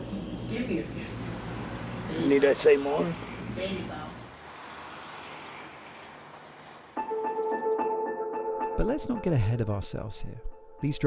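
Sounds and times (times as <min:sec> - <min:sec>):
background music with held notes: 0:07.0 - 0:11.0.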